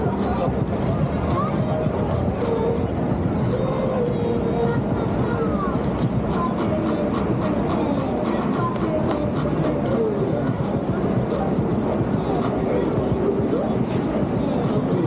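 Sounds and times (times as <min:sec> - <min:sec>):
many people talking: 0:00.0 - 0:15.0
music playing: 0:00.0 - 0:15.0
steady city hum: 0:00.0 - 0:15.0.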